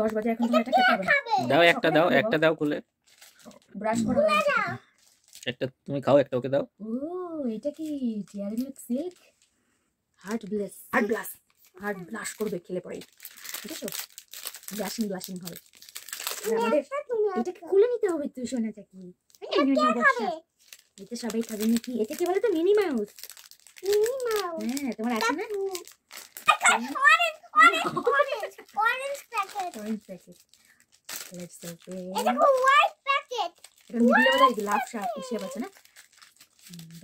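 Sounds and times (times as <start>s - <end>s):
child's voice: 0.0s - 2.3s, 3.9s - 4.9s, 10.9s - 12.5s, 16.4s - 20.5s, 23.8s - 25.9s, 26.5s - 30.3s, 32.1s - 35.8s
woman's voice: 0.0s - 2.4s, 3.6s - 4.3s, 6.8s - 9.2s, 10.2s - 14.0s, 14.7s - 15.6s, 21.0s - 23.1s, 24.6s - 25.7s, 31.3s - 32.4s, 33.9s - 35.7s
plastic wrapper crinkling: 0.0s - 5.6s, 7.6s - 9.6s, 10.2s - 37.0s.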